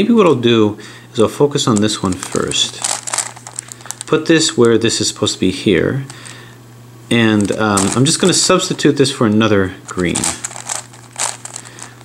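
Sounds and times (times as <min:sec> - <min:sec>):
puzzle cube plastic clicks: 0:02.1 - 0:04.8, 0:10.0 - 0:11.9.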